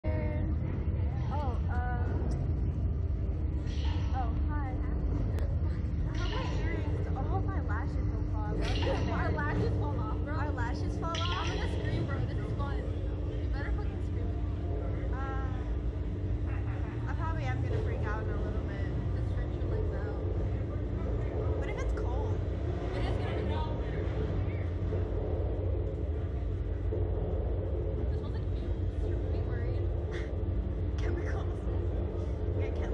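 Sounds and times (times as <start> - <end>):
women talking: 0.0 - 2.4, 3.7 - 15.8, 16.5 - 23.6, 28.0 - 31.9, 32.5 - 32.9
faint hum: 0.0 - 32.9
low rumble: 0.0 - 32.9.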